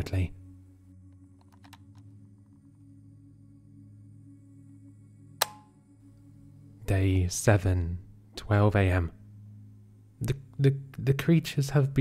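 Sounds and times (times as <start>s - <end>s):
dark ambient music drone: 0.0s - 12.0s
sharp click: 5.4s - 5.7s.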